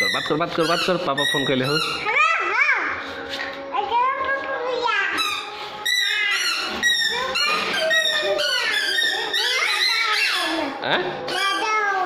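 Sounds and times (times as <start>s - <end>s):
toddler babbling and squealing: 4.9s - 12.0s.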